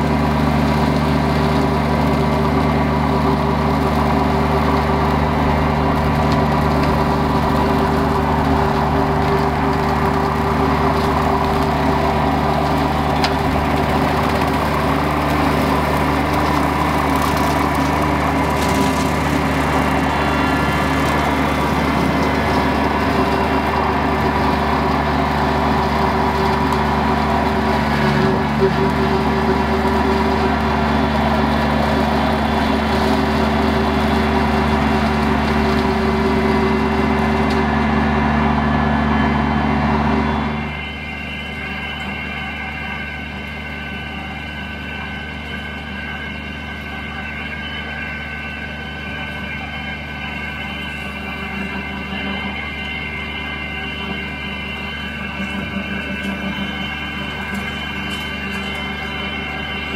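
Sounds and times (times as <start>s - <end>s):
brush cutter cutting grass: 0.0s - 38.2s, 44.5s - 59.9s
tractor diesel engine running: 0.0s - 59.9s.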